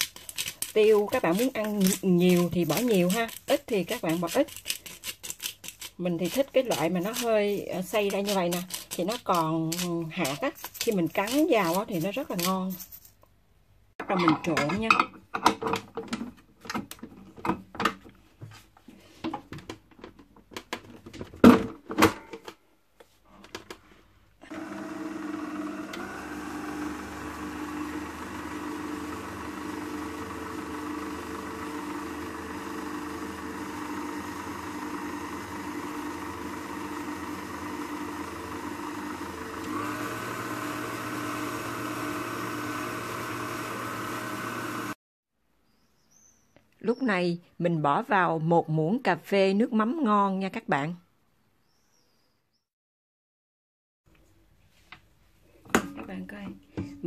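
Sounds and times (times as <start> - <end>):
stand mixer motor running: 24.4 - 45.0.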